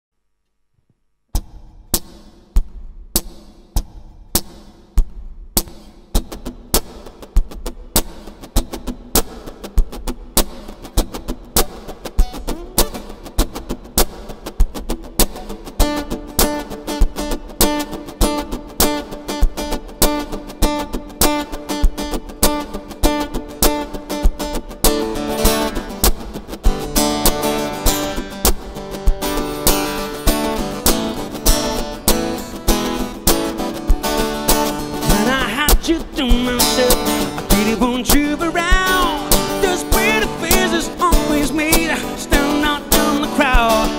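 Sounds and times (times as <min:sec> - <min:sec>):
percussive beat: 0:01.3 - 0:43.9
acoustic guitar picking: 0:05.6 - 0:43.9
person singing: 0:35.1 - 0:43.9.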